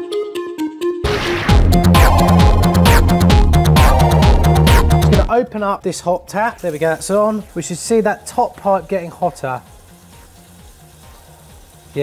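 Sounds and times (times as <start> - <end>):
quiet background music: 5.1 - 12.0
tap water running: 6.3 - 12.0.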